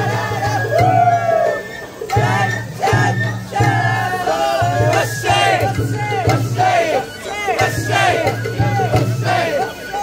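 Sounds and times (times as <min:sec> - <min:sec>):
people chanting in unison: 0:00.0 - 0:10.0.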